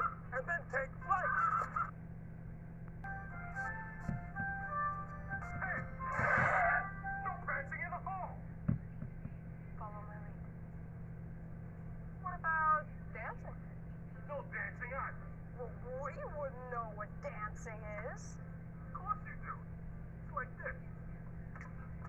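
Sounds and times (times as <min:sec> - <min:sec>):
steady low hum: 0:00.0 - 0:22.0
film soundtrack melody: 0:03.0 - 0:08.0
noisy burst: 0:03.3 - 0:07.3.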